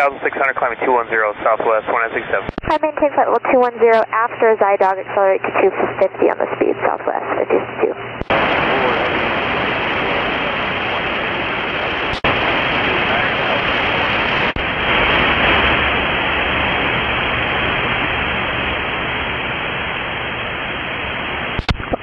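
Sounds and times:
radio static hiss: 0.0s - 22.0s.

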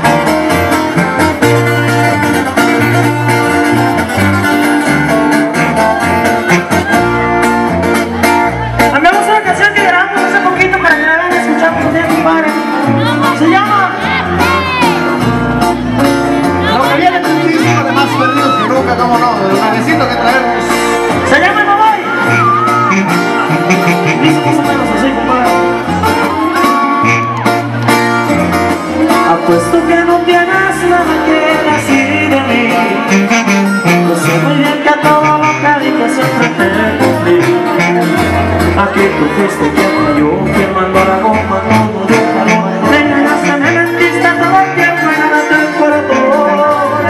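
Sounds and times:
bass line: 0.0s - 47.0s
guitar: 0.0s - 47.0s
live band music: 0.0s - 47.0s
person singing: 5.8s - 15.3s, 16.3s - 27.7s, 28.7s - 47.0s.

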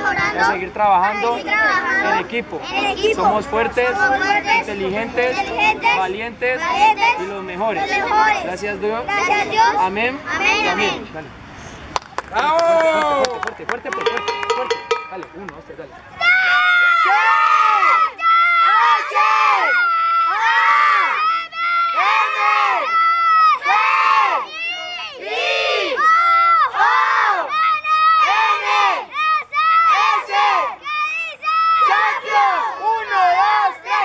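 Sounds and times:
boys shouting rhythmic chant: 0.0s - 11.3s, 14.0s - 34.0s.

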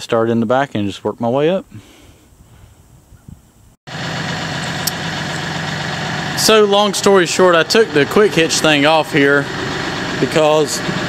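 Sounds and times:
tractor engine idling: 3.9s - 11.0s.

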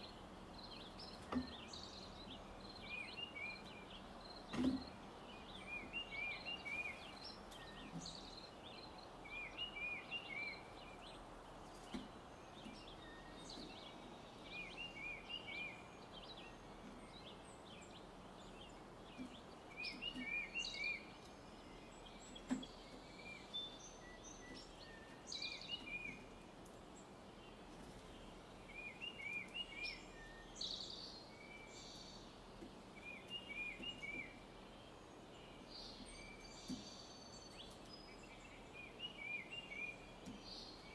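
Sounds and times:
outdoor hiss: 0.0s - 40.9s
small birds chirping: 0.0s - 40.9s.

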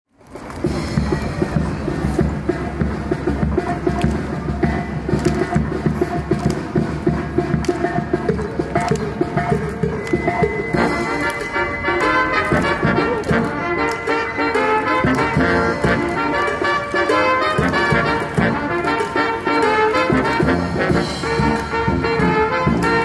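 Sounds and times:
brass band playing: 0.7s - 23.0s.

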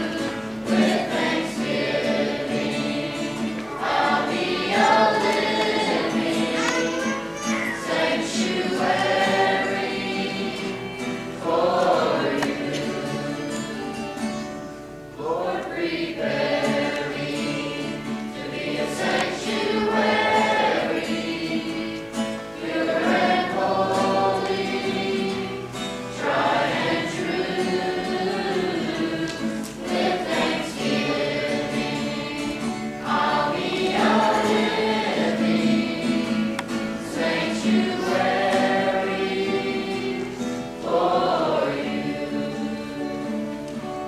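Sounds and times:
acoustic guitar: 0.0s - 44.0s
choir singing worship song: 0.0s - 44.0s.

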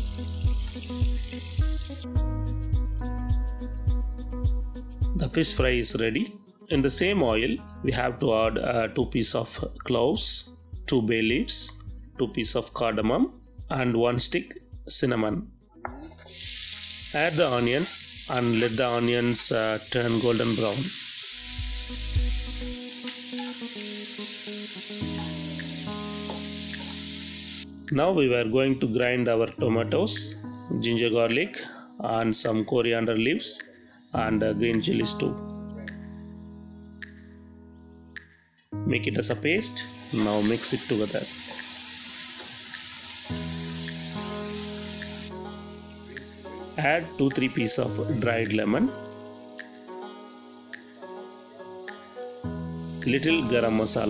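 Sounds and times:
onions sizzling in oil: 0.0s - 5.0s, 16.3s - 27.7s, 39.8s - 54.0s
background music: 0.0s - 54.0s.

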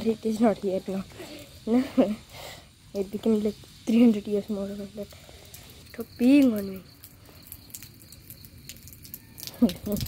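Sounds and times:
rainwater dripping onto wet ground: 0.0s - 10.0s.

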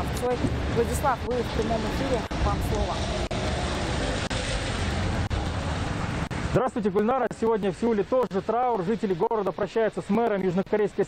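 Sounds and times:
traffic on a wet road: 0.0s - 11.0s.

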